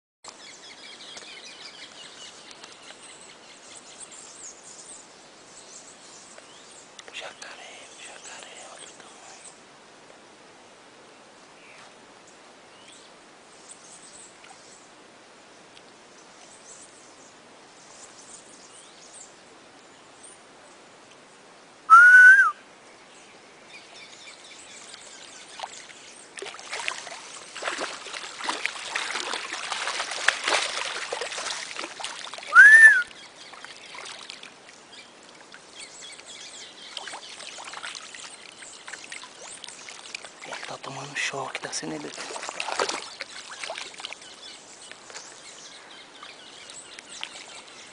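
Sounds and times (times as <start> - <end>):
loud short rising whistles: 21.9 - 22.6, 32.5 - 33.1
water splashing and churning: 24.8 - 45.4.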